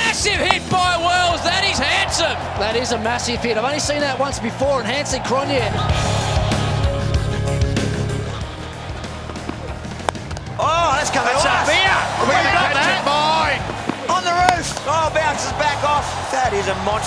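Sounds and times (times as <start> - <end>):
loud excited voices: 0.0 - 9.6, 10.5 - 17.0
cricket bat striking ball: 0.4 - 1.0, 9.3 - 10.5, 13.7 - 14.9
background music with bass line: 1.3 - 13.9.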